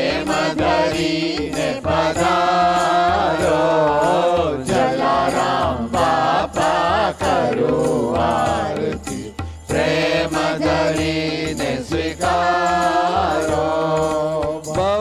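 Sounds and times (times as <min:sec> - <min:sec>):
light percussion: 0:00.0 - 0:15.0
person singing a devotional chant: 0:00.0 - 0:15.0.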